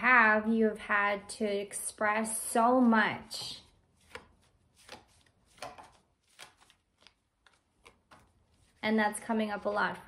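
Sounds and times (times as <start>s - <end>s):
cards shuffling by hand: 3.6s - 8.8s.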